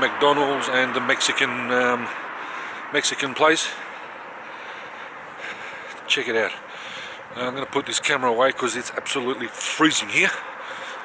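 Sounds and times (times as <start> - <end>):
street ambience hiss: 0.0 - 11.0.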